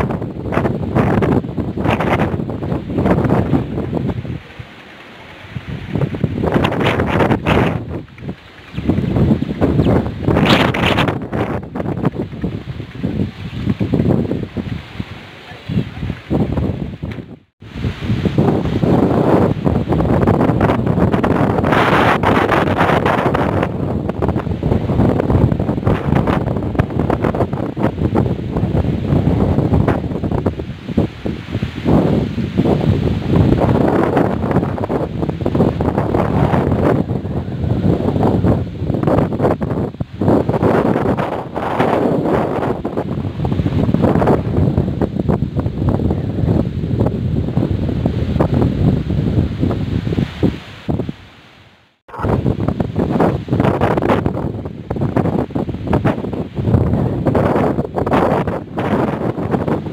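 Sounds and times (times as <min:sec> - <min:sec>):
wind buffeting microphone: 0:00.0 - 0:51.3, 0:52.1 - 0:59.9.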